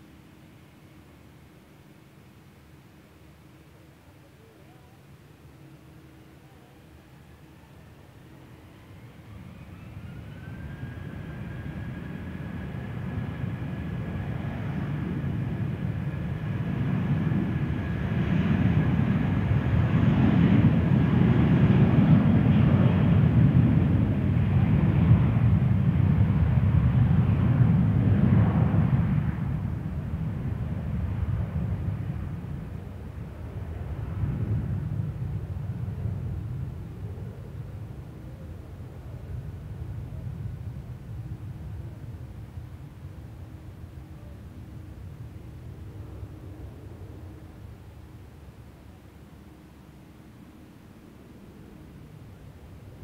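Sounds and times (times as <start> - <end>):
loud jet rumble: 10.0 - 43.8.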